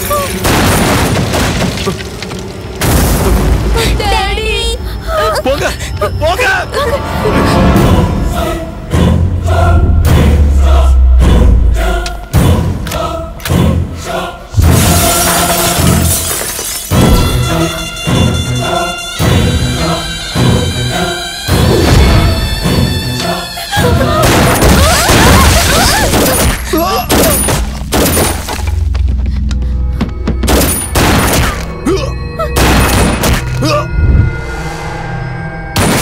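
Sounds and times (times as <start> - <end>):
low droning film score: 0.0 - 16.1, 16.9 - 36.0
choir chanting: 7.0 - 16.1, 17.2 - 24.2.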